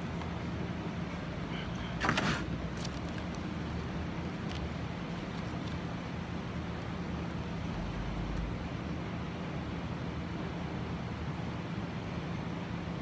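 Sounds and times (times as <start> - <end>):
low steady hum: 0.0 - 13.0
outdoor background rumble: 0.0 - 13.0.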